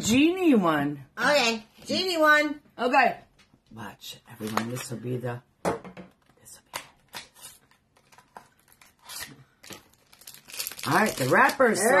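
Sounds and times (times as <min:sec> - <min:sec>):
knife cutting paper-wrapped bar: 0:07.1 - 0:11.9
paper crinkling: 0:07.2 - 0:12.0.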